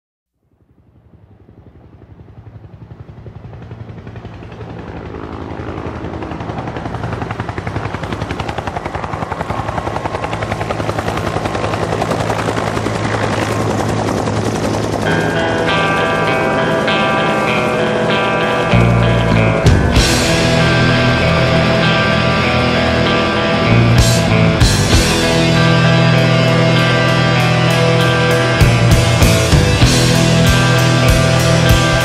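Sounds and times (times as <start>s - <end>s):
helicopter rotor chopping: 0.6s - 32.0s
rock music with guitar: 15.0s - 32.0s.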